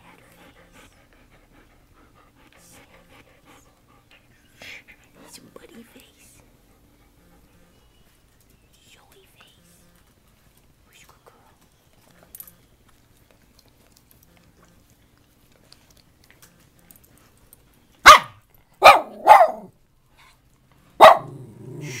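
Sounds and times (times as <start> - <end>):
dog barking: 18.0 - 19.7, 21.0 - 22.0.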